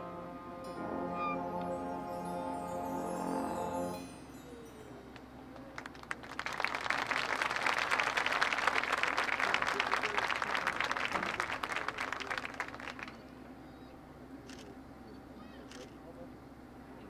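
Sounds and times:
audience applauding: 5.6s - 13.4s.

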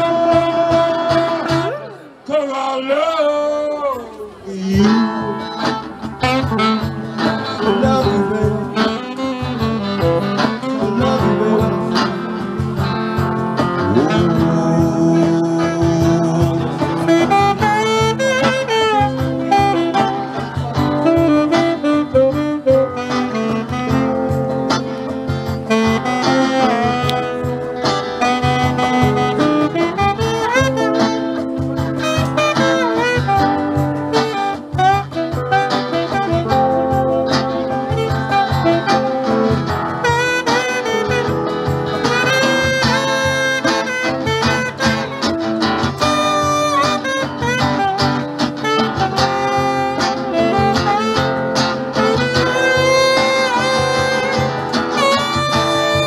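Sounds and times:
cajon beat: 0.0s - 56.0s
strummed acoustic guitar: 0.0s - 56.0s
saxophone solo: 4.9s - 56.0s.

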